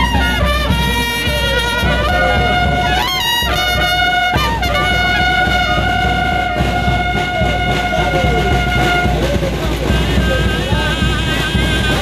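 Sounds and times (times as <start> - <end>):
low sliding brass notes: 0.0 - 12.0
steady drum beat: 0.0 - 12.0
trumpet long note: 0.0 - 12.0.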